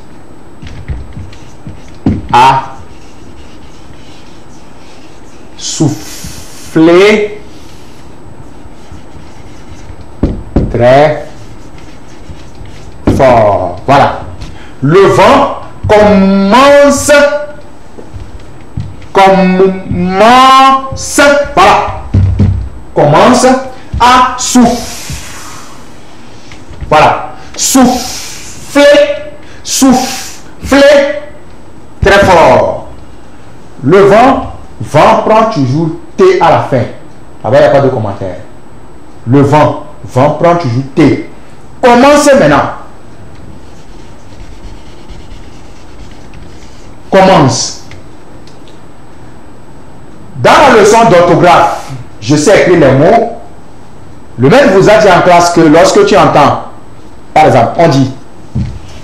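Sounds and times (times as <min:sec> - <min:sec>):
steady background hiss: 0:00.0 - 0:59.0
marker scratching on whiteboard: 0:00.6 - 0:06.8, 0:07.4 - 0:14.6, 0:23.8 - 0:25.7, 0:43.4 - 0:47.0.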